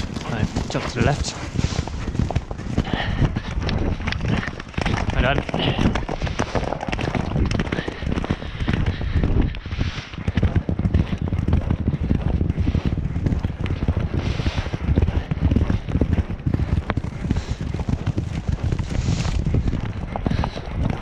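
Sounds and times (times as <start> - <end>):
hoofbeats on turf: 0.0 - 21.0
wind rumble on microphone: 0.0 - 21.0.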